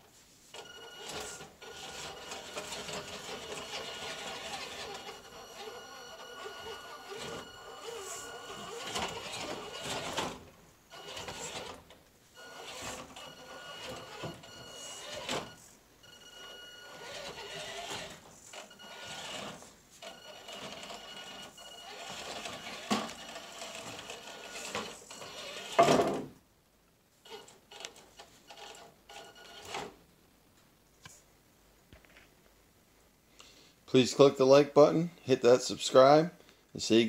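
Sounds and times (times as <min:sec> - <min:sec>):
small electric motor whine: 0:01.2 - 0:10.2, 0:12.4 - 0:15.5, 0:16.5 - 0:25.8.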